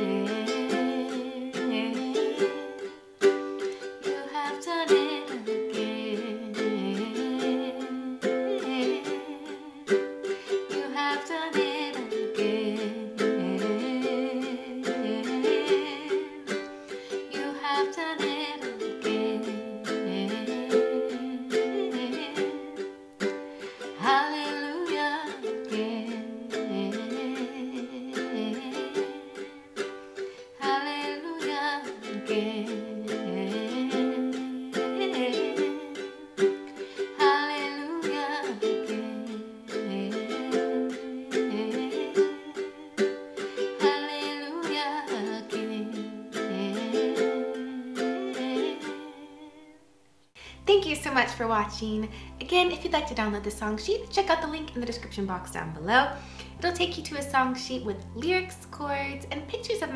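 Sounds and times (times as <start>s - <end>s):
woman singing wordless notes: 0.0s - 3.1s, 3.8s - 23.0s, 23.6s - 59.9s
ukulele strumming chords: 0.0s - 59.9s.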